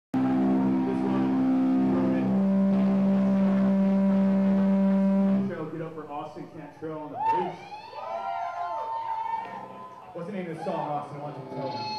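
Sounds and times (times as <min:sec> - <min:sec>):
sustained electric guitar tone: 0:00.2 - 0:06.1
man talking over pa: 0:05.4 - 0:07.6.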